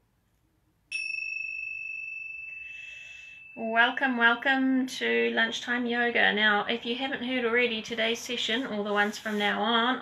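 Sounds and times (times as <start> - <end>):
tingsha cymbals ringing: 0.9 - 5.1.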